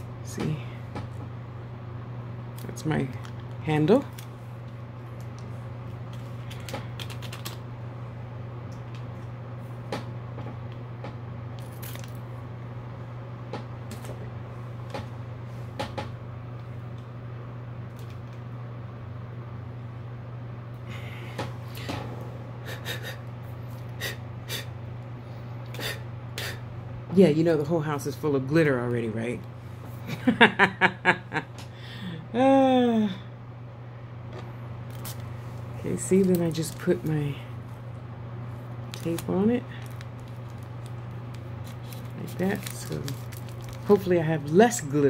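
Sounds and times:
steady low hum: 0.0 - 45.0.

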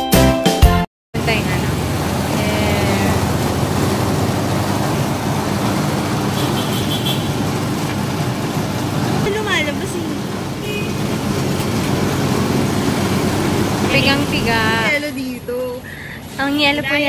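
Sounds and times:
street traffic: 1.1 - 17.0.

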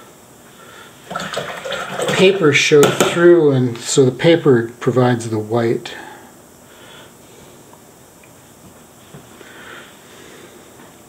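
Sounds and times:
brush sloshing in water: 1.1 - 2.4.

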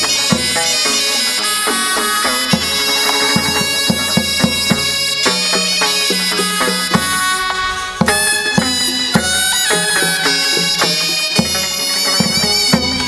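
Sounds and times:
drum strokes: 0.0 - 13.0
reedy wind instrument melody: 0.0 - 13.0.

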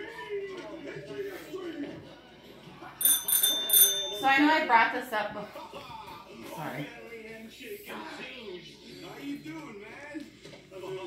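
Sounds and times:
bicycle bell ringing: 3.0 - 4.7.

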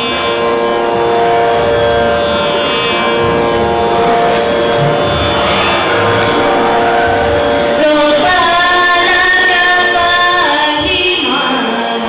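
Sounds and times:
girl singing into a microphone: 7.8 - 12.0.

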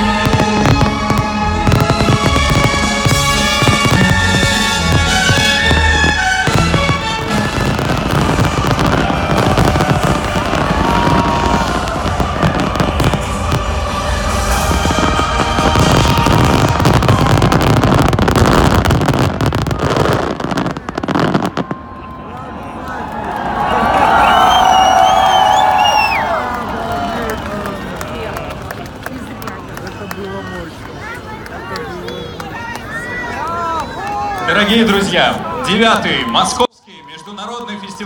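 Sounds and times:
fireworks bangs and crackling: 0.0 - 22.4
crowd cheering: 0.0 - 38.0
people whistling: 24.1 - 26.3.

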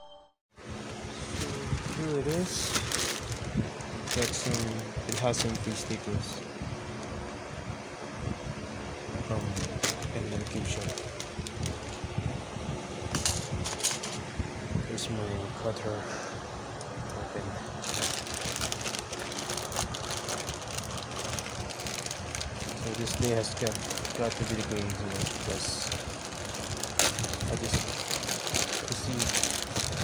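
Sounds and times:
plastic bag rustling: 0.7 - 6.4, 9.3 - 12.1, 13.1 - 14.2, 17.8 - 30.0
sharp plastic crackle: 0.9 - 6.4, 9.3 - 12.0, 13.1 - 14.2, 17.7 - 30.0.

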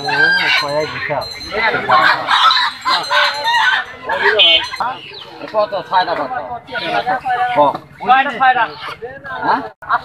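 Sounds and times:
chicken squawking: 0.0 - 9.0.

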